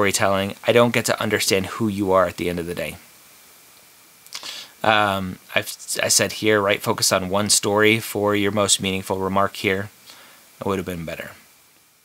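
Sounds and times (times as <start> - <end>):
person speaking: 0.0 - 3.0, 4.3 - 11.4
faint steady hiss: 0.0 - 12.0.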